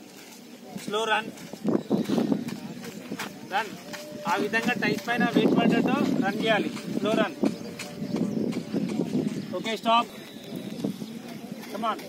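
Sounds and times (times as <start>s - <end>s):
heavy running footfalls on dirt: 0.0s - 12.0s
voices: 0.0s - 12.0s.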